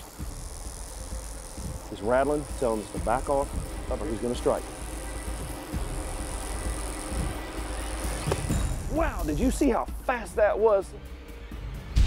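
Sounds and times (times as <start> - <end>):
rattlesnake rattle buzzing: 0.0 - 10.0.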